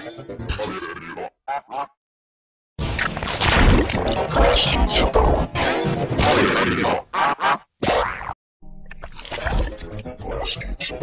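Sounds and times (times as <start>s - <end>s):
processed voice bursts: 3.3s - 8.2s.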